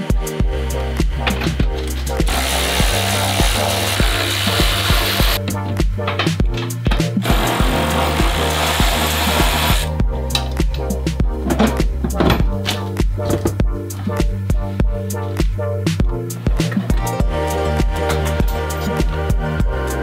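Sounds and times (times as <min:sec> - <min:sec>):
background music with steady beat: 0:00.0 - 0:20.0
power tool running: 0:02.2 - 0:05.4, 0:07.2 - 0:09.9.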